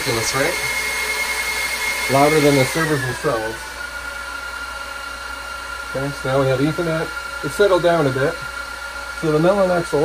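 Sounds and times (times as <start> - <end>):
cooling fans whooshing with whine: 0.0 - 10.0.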